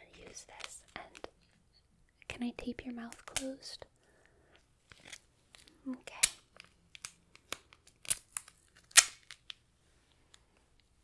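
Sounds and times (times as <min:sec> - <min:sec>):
tape crinkling and clicking: 0:00.5 - 0:01.6, 0:03.0 - 0:03.6, 0:04.8 - 0:11.0
duct tape ripping: 0:06.2 - 0:09.5.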